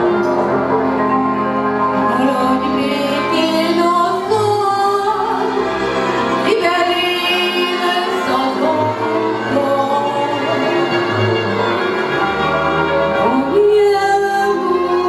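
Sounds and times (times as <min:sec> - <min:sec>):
string band playing: 0:00.0 - 0:15.0
woman singing: 0:02.0 - 0:05.7, 0:06.4 - 0:10.9, 0:13.2 - 0:15.0.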